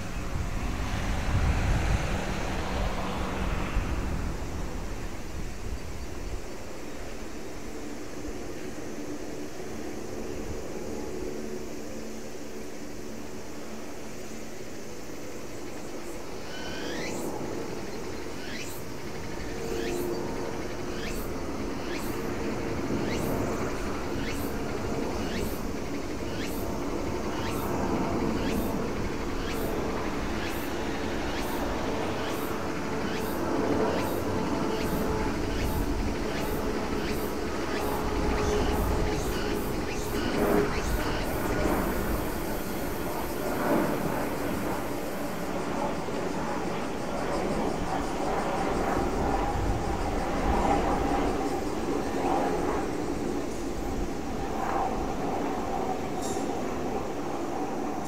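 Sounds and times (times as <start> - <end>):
propeller aircraft drone: 0.0 - 58.0.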